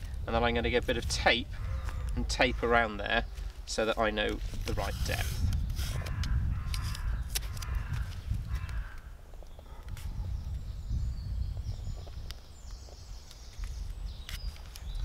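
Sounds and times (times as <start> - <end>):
wind rumble on microphone: 0.0 - 15.0
tape peeling off a roll: 4.4 - 8.2.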